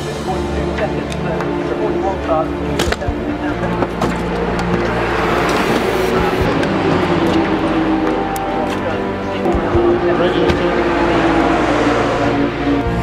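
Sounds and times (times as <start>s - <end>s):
voices: 0.0s - 13.0s
race car engines running: 2.6s - 13.0s.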